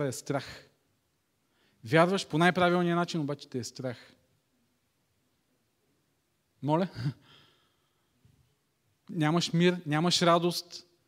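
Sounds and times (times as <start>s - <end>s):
man speaking: 0.0s - 0.8s, 1.8s - 4.2s, 6.6s - 7.2s, 9.1s - 11.0s.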